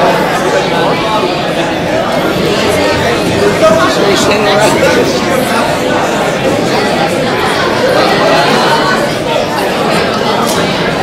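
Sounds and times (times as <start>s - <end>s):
babble of a large crowd: 0.0s - 11.0s.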